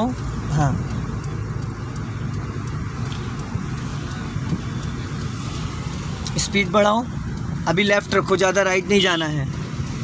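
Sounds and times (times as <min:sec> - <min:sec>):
car engine hum: 0:00.0 - 0:10.0
tyres on road: 0:00.0 - 0:10.0.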